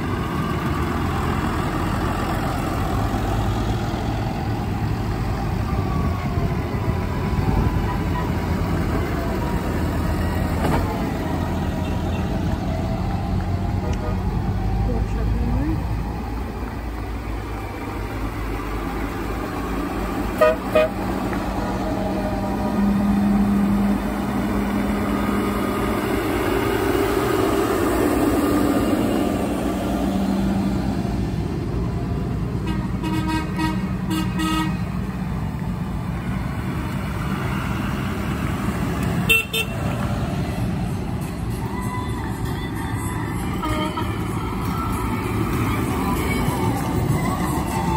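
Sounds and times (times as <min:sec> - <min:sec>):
diesel tractor engines running: 0:00.0 - 0:47.9.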